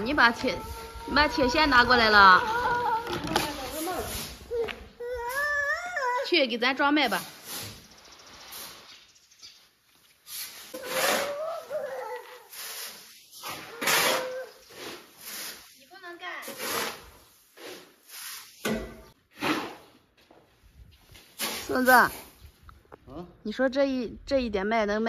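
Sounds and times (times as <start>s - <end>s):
shovels scraping grain on concrete: 3.4s - 4.6s, 6.9s - 18.7s, 19.3s - 20.0s, 21.0s - 22.4s.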